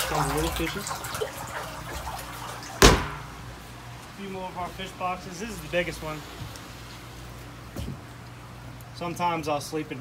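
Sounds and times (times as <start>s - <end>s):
water running and splashing: 0.0s - 3.9s
sharp knock: 2.8s - 3.3s.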